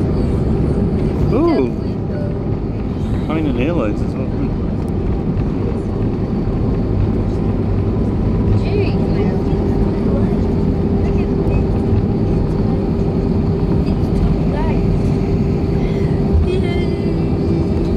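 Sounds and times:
rumble of engines and wheels: 0.0s - 17.9s
steady hum: 0.0s - 17.9s.

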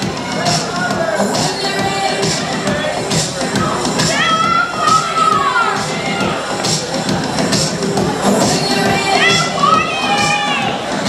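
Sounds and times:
swing dance music: 0.0s - 11.0s.

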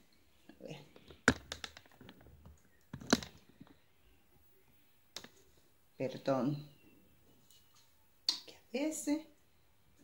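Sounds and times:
microphone handling clicks and knocks: 0.9s - 3.8s.

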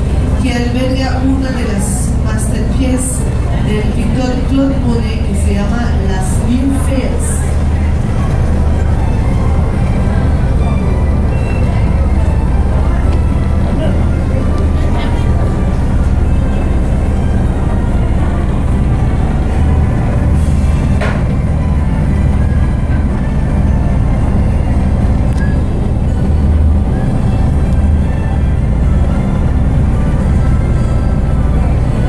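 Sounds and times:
boat engine humming: 0.0s - 32.0s.

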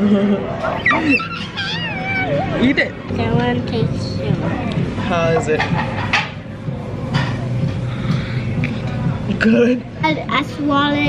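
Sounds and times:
child squealing: 0.6s - 2.6s.

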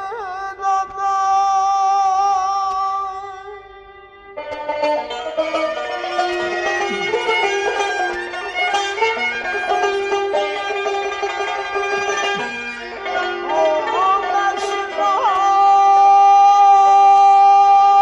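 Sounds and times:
plucked and bowed strings: 0.0s - 18.0s.

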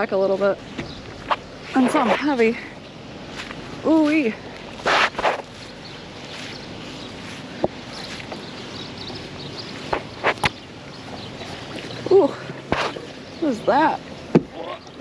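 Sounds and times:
steady outdoor background: 0.0s - 15.0s.

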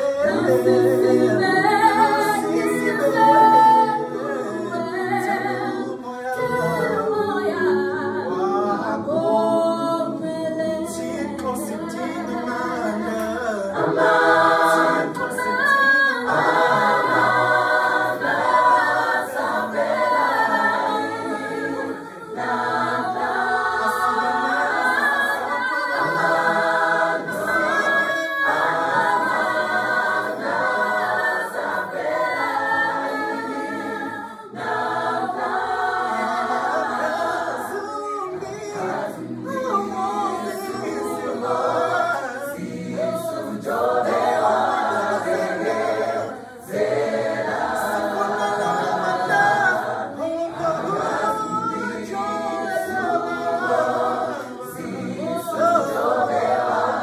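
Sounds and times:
choir singing a cappella: 0.0s - 57.0s.

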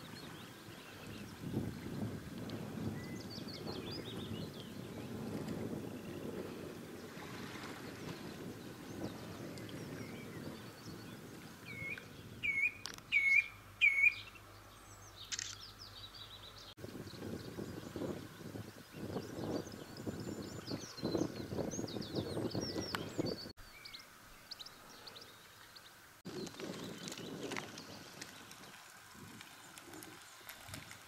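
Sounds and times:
wind rumble on microphone: 0.0s - 13.2s, 16.1s - 23.6s, 26.3s - 31.0s
small birds twittering: 3.0s - 6.7s, 8.0s - 28.8s
loud sharp bird calls: 11.7s - 14.4s.

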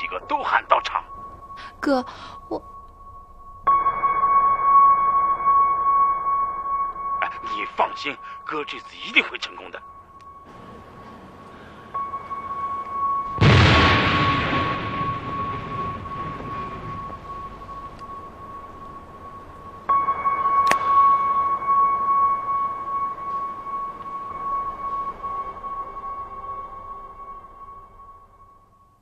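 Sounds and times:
high ringing tone: 0.0s - 29.0s
explosion rumble: 13.4s - 20.0s
sharp crack: 20.6s - 21.0s.

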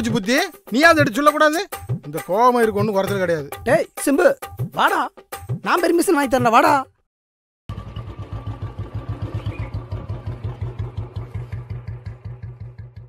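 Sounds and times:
motorcycle engine idling: 7.7s - 13.0s.

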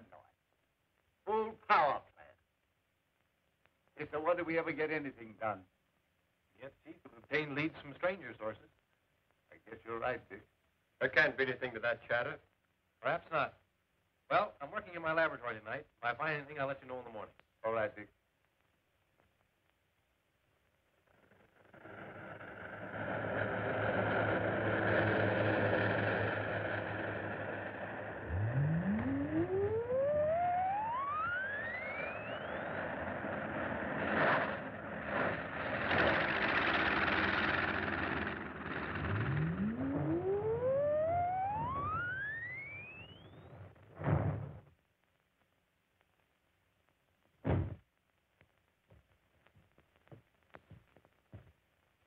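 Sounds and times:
rising whine: 21.4s - 43.8s
electrical machinery humming: 21.5s - 43.7s.

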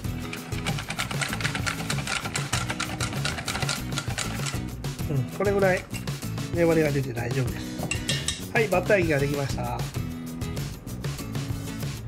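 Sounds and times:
whisk clicking against metal bowl: 0.0s - 4.6s
background music: 0.0s - 12.0s.

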